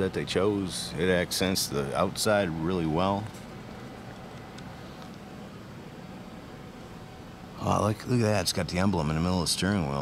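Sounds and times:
exhibition hall hum and hiss: 0.0 - 10.0.

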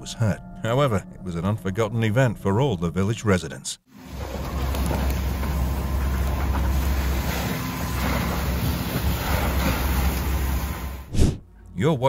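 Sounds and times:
fire hoses rushing: 4.0 - 11.4
deep continuous rumble: 4.1 - 11.1.

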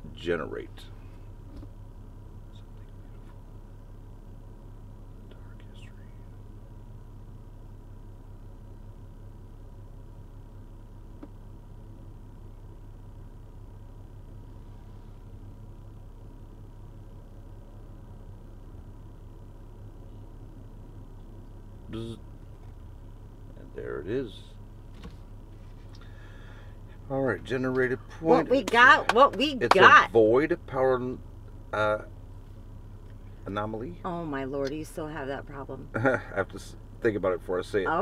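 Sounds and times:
car cabin hum: 0.0 - 38.0.

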